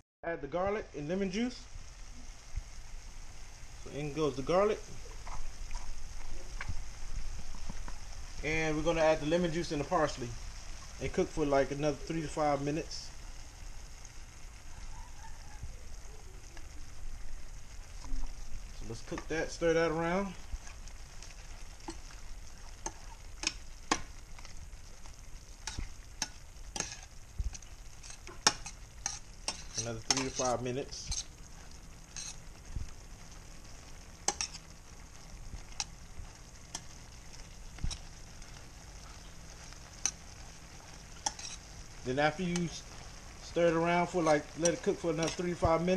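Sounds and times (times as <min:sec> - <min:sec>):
shrimp sizzling in a frying pan: 0:00.4 - 0:45.9
utensil clicking against pan: 0:21.8 - 0:22.1, 0:22.8 - 0:24.1, 0:25.6 - 0:30.5, 0:34.2 - 0:34.6, 0:41.2 - 0:41.6.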